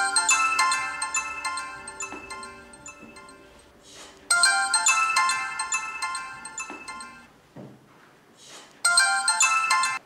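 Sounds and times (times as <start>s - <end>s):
mobile phone ringtone: 0.0s - 7.3s, 8.9s - 10.0s.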